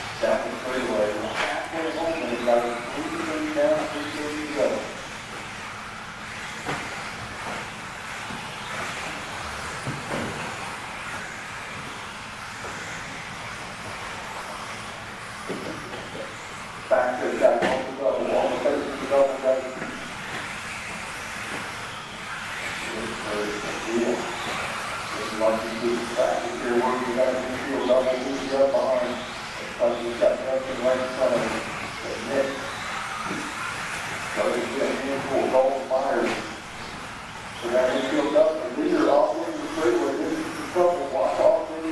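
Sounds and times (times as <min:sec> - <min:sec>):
indoor hall hum: 0:00.0 - 0:41.9
rc buggies whirring hiss: 0:00.0 - 0:41.9
person speaking: 0:25.2 - 0:32.3.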